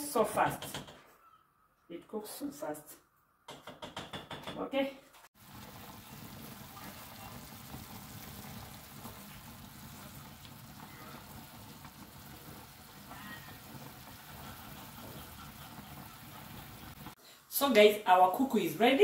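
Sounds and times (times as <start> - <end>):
water bubbling in a pot: 5.4 - 17.2.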